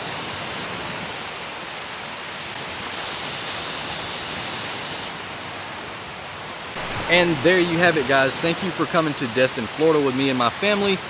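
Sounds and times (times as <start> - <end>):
ocean surf breaking: 0.0 - 11.0.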